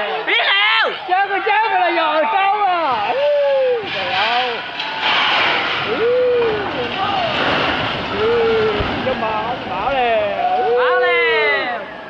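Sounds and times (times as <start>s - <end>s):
people shouting: 0.0s - 3.9s, 5.8s - 7.4s, 8.0s - 12.0s
building collapsing with crashing rumble: 2.8s - 12.0s.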